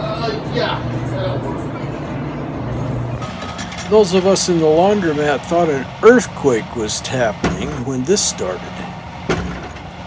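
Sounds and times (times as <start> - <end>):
steady low hum: 0.0 - 10.0
tracked excavator running: 0.0 - 10.0
metal clanks and rattles: 3.2 - 5.0, 9.2 - 10.0.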